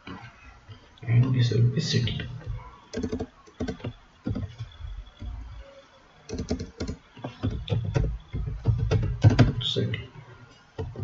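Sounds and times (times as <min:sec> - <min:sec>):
computer keyboard keystrokes: 0:02.9 - 0:05.4, 0:06.3 - 0:09.5.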